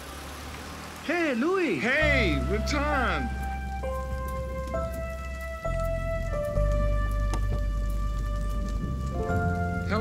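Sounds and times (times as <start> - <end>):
soft film score: 2.0 - 10.0.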